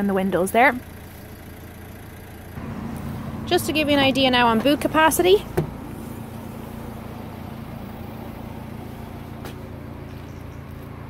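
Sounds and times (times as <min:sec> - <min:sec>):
car engine idling: 0:00.0 - 0:11.0
steady low hum: 0:02.6 - 0:10.8.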